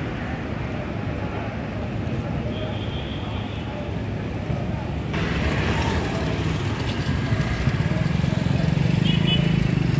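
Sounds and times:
faint crowd voices: 0.0 - 9.9.

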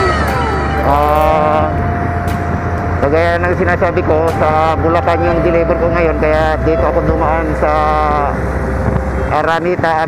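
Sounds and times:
vehicle rumbling on wet road: 0.0 - 10.0.

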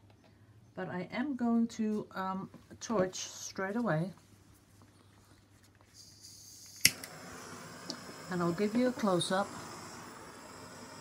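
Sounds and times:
lit flame hissing: 5.9 - 11.0
gas torch hissing: 6.0 - 11.0
torch ignition click: 6.3 - 11.0.

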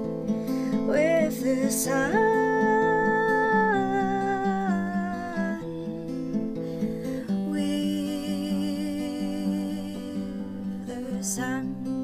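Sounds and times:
acoustic guitar strummed: 0.0 - 12.0
woman singing wordless note: 7.4 - 11.7.

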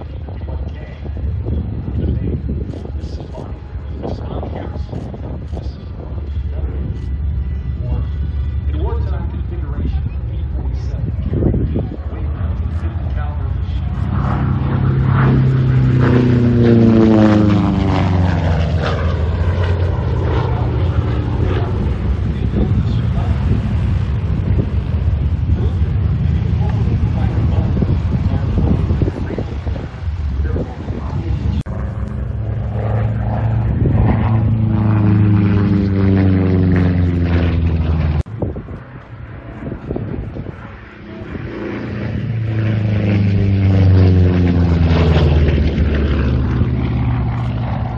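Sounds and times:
propeller plane passing overhead: 0.0 - 47.9.

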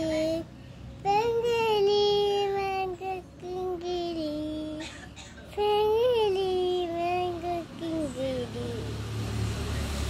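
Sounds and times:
toddler girl singing: 0.0 - 9.1.

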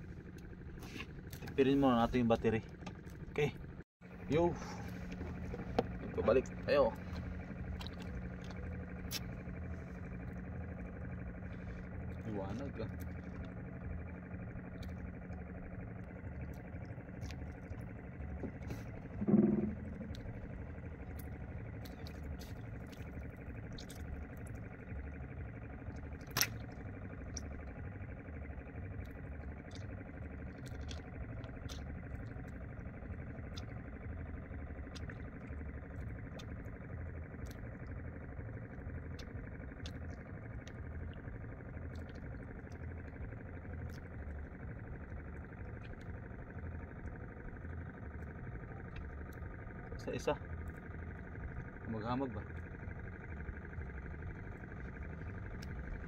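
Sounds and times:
low pulsing hum: 0.0 - 56.0.

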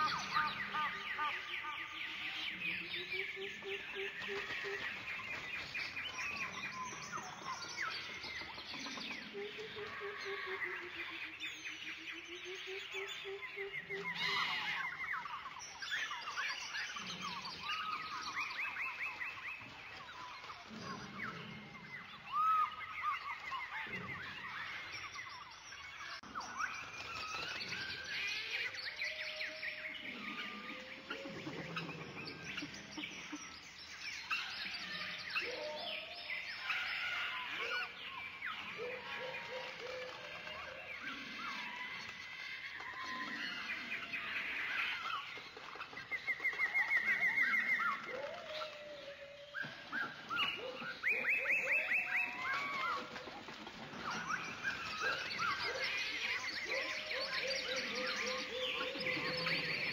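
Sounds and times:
birds chirping and whistling: 0.0 - 59.9.

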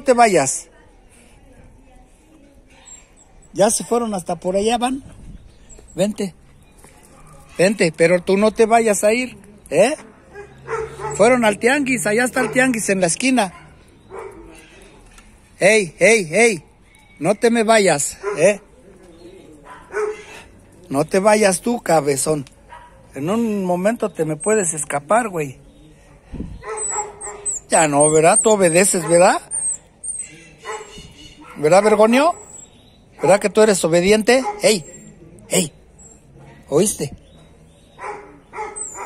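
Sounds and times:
dog yelp: 10.3 - 11.5, 12.2 - 12.8, 13.5 - 14.6, 18.2 - 18.6, 19.6 - 20.4, 22.7 - 23.0, 26.6 - 33.5, 34.3 - 35.2, 37.9 - 39.0
small dog whining: 26.6 - 31.6, 32.3 - 32.8, 36.0 - 36.4, 38.0 - 39.0.

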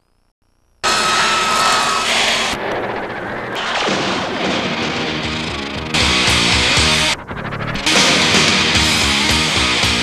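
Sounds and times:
loud steady roar: 0.8 - 10.0.

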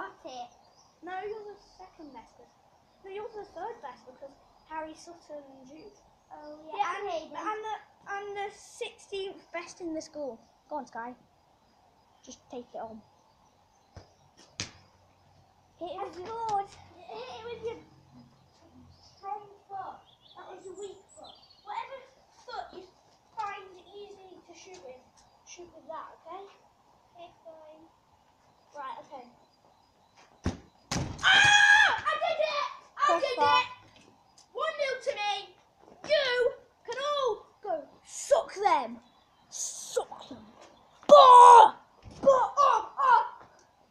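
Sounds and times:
children shouting and squealing: 15.8 - 23.6, 31.2 - 33.9, 34.6 - 43.5
football being kicked: 30.4 - 32.0.

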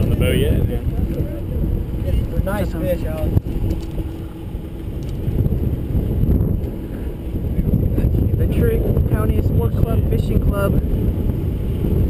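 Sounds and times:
boat engine rumble: 0.0 - 12.0
wind buffeting microphone: 0.0 - 12.0.

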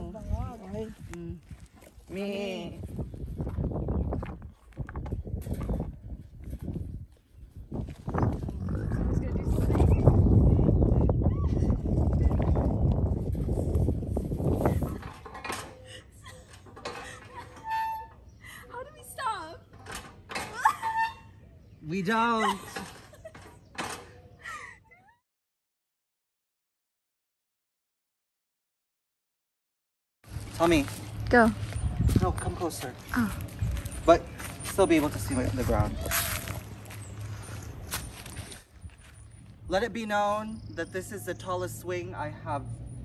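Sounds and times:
camel vocalizing: 8.4 - 9.4.

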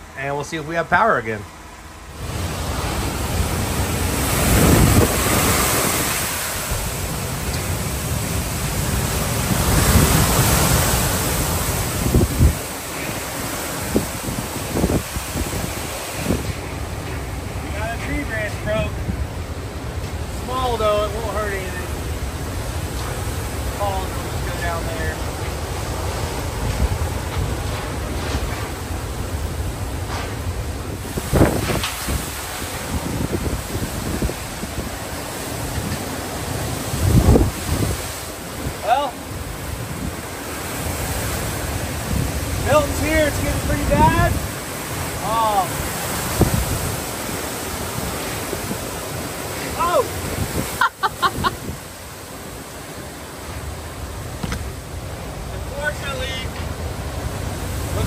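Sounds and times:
strong wind on microphone: 2.2 - 17.0, 29.8 - 52.0.

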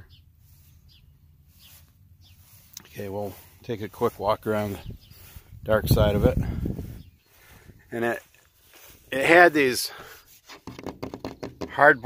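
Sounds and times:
faint bird chirps: 0.0 - 3.4.

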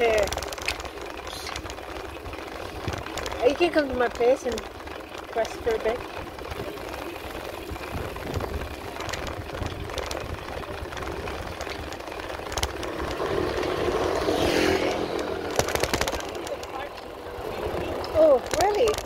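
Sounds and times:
bicycle road rumble: 0.0 - 19.0
wind buffeting microphone: 0.0 - 19.0.

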